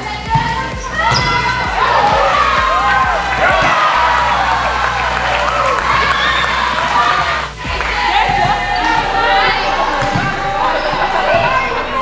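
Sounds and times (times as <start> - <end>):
players calling and shouting: 0.0 - 12.0
volleyball thuds: 0.3 - 4.1.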